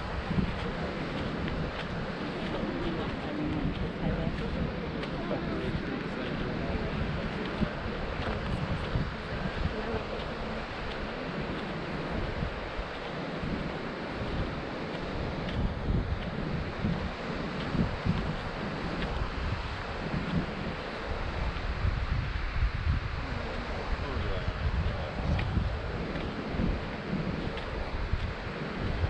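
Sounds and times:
ocean surf: 0.0 - 29.0
wind buffeting microphone: 0.0 - 29.0.

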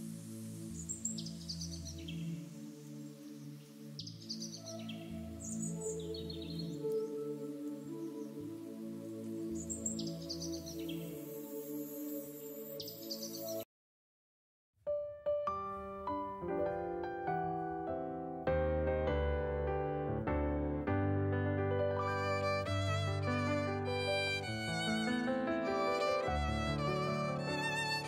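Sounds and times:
calm ambient music: 0.0 - 13.6, 15.0 - 28.0.

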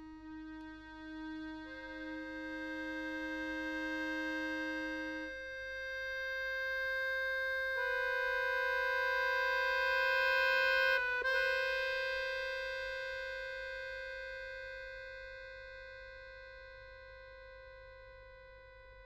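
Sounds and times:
accordion holding a long note: 0.0 - 19.0.

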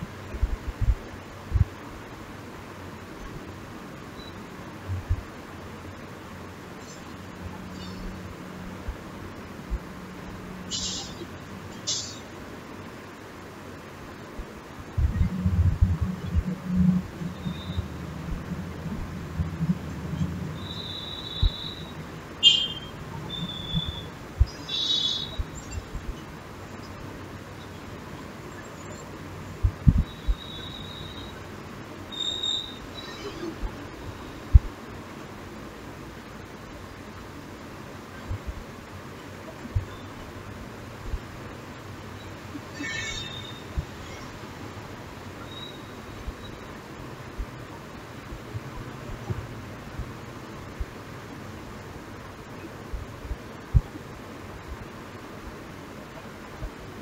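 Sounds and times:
steady hiss: 0.0 - 57.0
high chirps: 20.6 - 26.2, 29.9 - 31.4, 32.1 - 34.3.

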